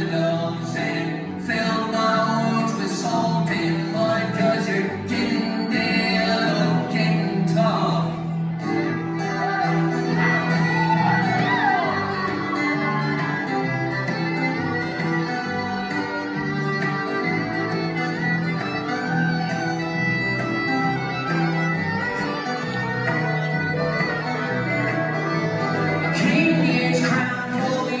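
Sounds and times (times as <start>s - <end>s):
bowed fiddle: 0.0s - 28.0s
strummed acoustic guitar: 0.0s - 28.0s.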